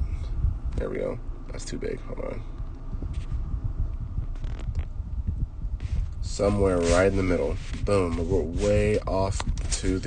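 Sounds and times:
low uneven rumble: 0.0 - 10.0.

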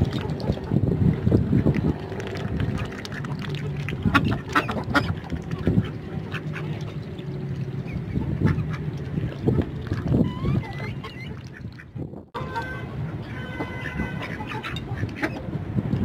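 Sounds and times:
ducks quacking hoarsely: 4.0 - 7.1, 7.8 - 9.6, 10.3 - 15.5.

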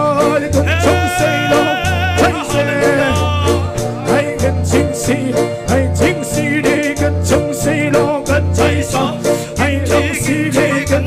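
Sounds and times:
bass notes: 0.0 - 11.0
person singing with vibrato: 0.0 - 11.0
steady drum beat: 0.6 - 7.9.

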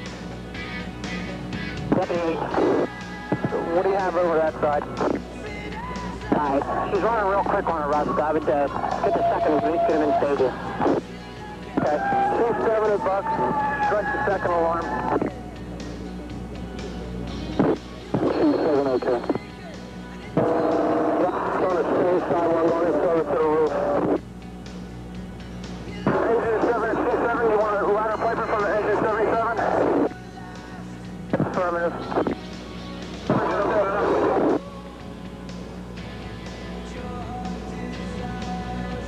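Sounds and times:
steady low hum: 0.0 - 39.0
garbled radio voices: 1.9 - 5.3, 6.2 - 11.1, 11.7 - 15.4, 17.6 - 19.5, 20.4 - 24.2, 26.1 - 30.2, 31.3 - 32.4, 33.3 - 34.7.

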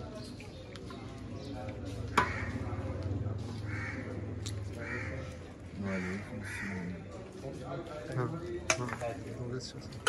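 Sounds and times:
crows cawing: 2.1 - 2.8, 3.6 - 7.0.

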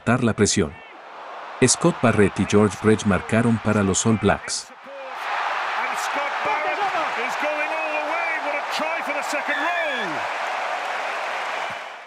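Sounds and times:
stadium crowd cheering: 0.1 - 12.0
voices rising and falling: 0.8 - 10.2.

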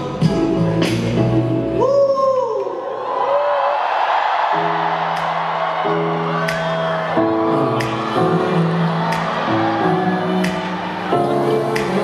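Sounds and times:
crowd cheering and screaming: 1.8 - 12.0.

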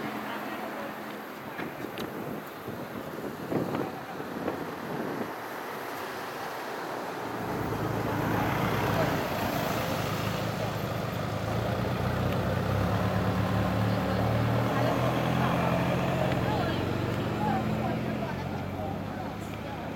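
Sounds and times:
people chatting: 0.0 - 5.2, 7.6 - 19.9
vehicle engine humming: 7.2 - 19.9.

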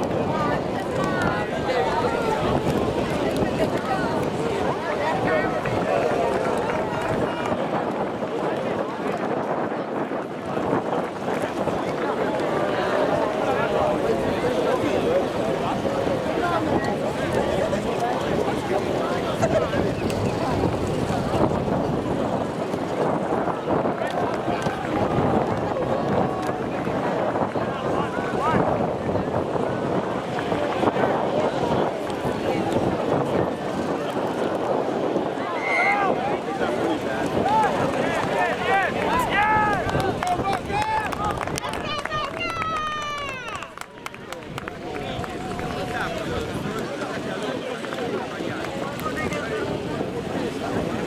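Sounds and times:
many voices shouting: 0.0 - 8.6, 35.3 - 47.6
wind buffeting microphone: 0.0 - 51.0
people shouting: 37.4 - 43.7.

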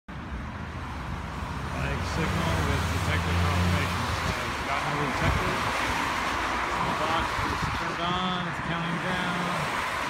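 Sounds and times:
cars passing with tyre hiss: 0.1 - 10.0.

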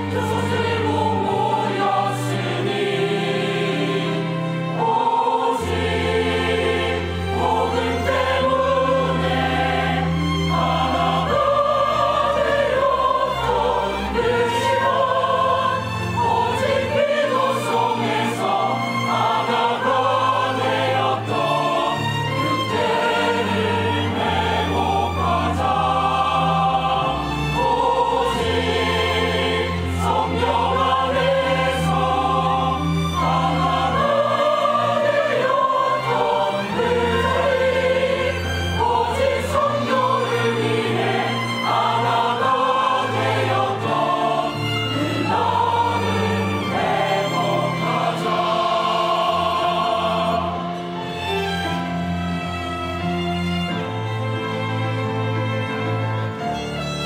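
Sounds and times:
church choir singing: 0.0 - 57.0.

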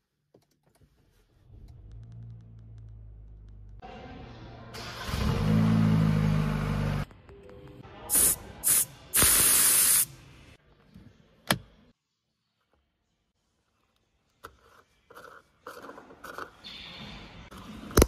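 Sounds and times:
car engine revving: 4.8 - 7.1
air hissing from tyre valve: 8.1 - 10.1.

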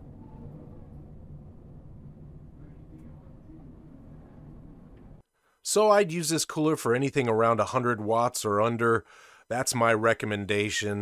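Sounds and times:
cooling fan humming: 0.0 - 11.0.

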